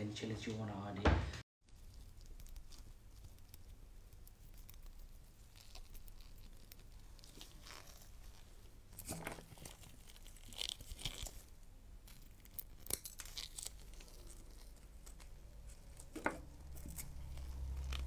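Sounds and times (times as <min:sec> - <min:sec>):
eggshell crackling: 0:01.6 - 0:18.0.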